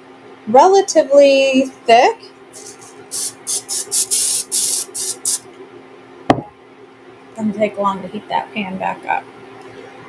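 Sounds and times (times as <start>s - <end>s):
oil spray can hissing: 2.6s - 5.4s
can knocking on countertop: 6.3s - 6.5s.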